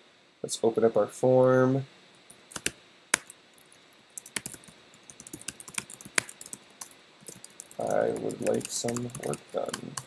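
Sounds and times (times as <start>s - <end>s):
typing on computer keyboard: 2.5s - 3.4s, 4.2s - 10.0s.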